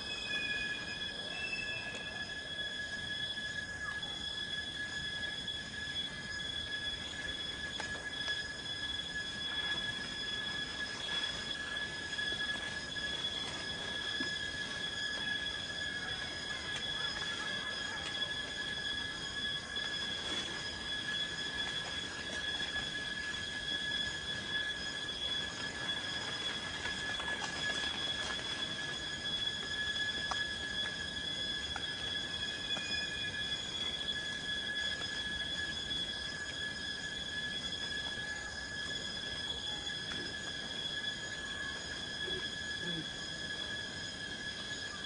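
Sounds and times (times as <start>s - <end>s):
steady high-pitched whine: 0.0s - 45.0s.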